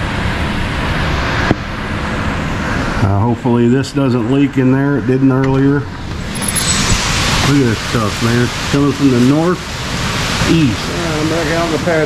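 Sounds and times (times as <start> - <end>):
high wind in trees: 5.8 - 12.0
heavy rain: 6.0 - 12.0.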